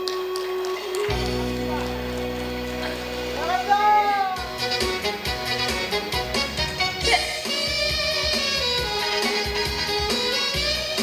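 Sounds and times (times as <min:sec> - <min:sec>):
keyboard chords: 0:00.0 - 0:11.0
steady drum beat: 0:03.7 - 0:11.0.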